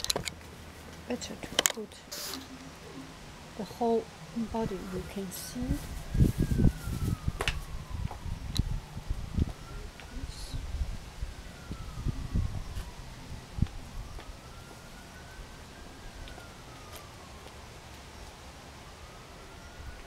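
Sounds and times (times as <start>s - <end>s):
distant wailing siren: 0.5s - 20.0s.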